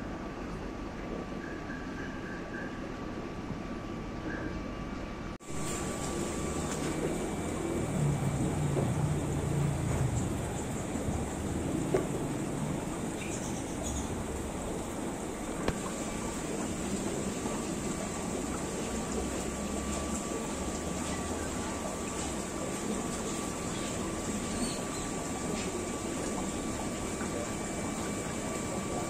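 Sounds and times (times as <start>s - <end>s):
shop ambience hum and hiss: 0.0s - 29.0s.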